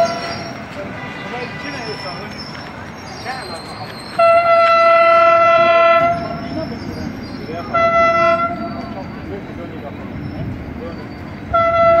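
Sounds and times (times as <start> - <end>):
horn blasts: 0.0 - 2.2, 4.2 - 6.4, 7.7 - 8.9, 11.5 - 12.0
street and vehicle noise: 0.0 - 12.0.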